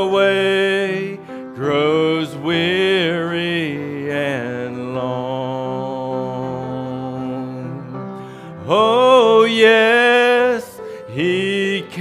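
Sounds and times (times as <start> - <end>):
man singing a hymn: 0.0 - 12.0.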